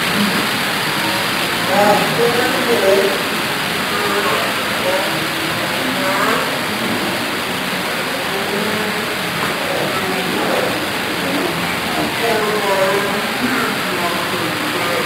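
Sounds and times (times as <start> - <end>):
crowd of people talking: 0.0 - 15.0.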